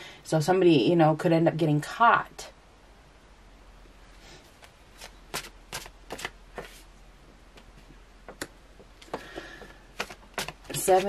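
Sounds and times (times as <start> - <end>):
tarot cards being shuffled: 4.6 - 6.9, 9.9 - 11.0.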